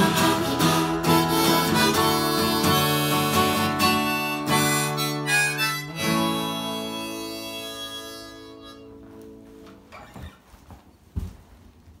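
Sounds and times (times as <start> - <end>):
knocks and thumps of movement: 9.9 - 11.6.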